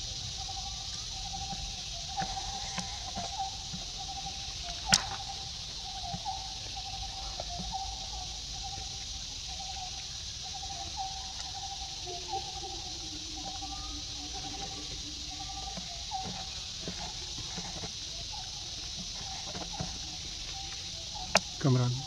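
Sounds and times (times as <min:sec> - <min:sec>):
high insect drone: 0:00.0 - 0:22.0.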